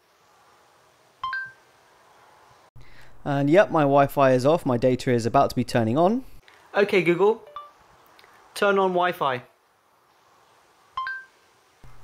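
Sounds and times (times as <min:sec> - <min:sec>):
two-tone phone chime: 0:01.2 - 0:01.6, 0:11.0 - 0:11.3.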